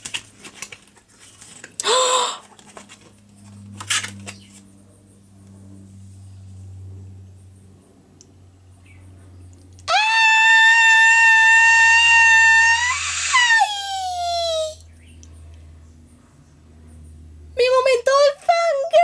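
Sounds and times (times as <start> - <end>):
woman's high-pitched squeal: 9.9 - 14.8.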